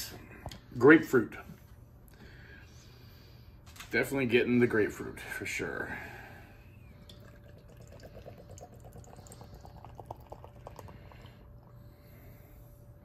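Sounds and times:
liquid pouring into a glass: 7.0 - 11.8.

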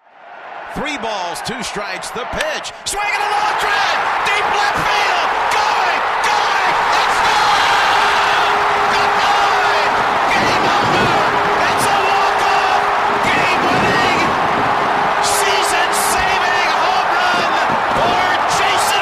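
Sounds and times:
crowd cheering loudly: 0.0 - 19.0.

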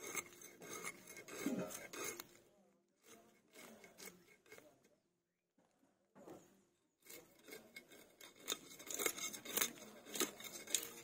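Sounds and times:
knife scraping cuts on fish: 0.0 - 2.4, 3.0 - 4.8, 7.0 - 11.0.

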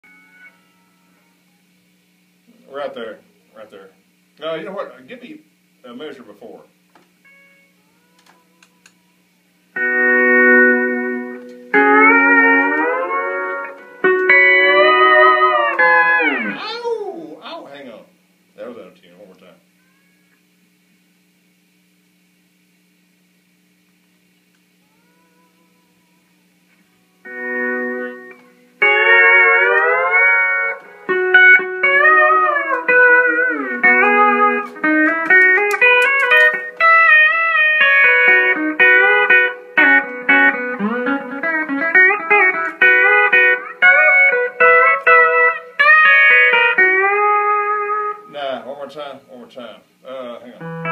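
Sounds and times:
pedal steel guitar gliding melody: 9.8 - 16.6, 27.2 - 48.3, 50.6 - 50.9.

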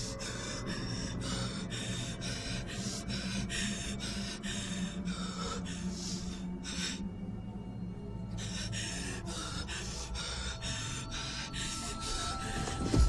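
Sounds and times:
low steady hum: 0.0 - 13.0
woman breathing hard: 0.0 - 13.0.

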